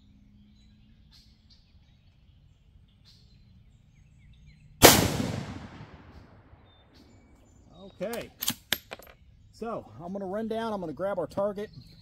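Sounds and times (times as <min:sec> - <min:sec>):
rifle shot with echo: 0:04.8 - 0:06.8
faint bird chirps: 0:11.4 - 0:12.0.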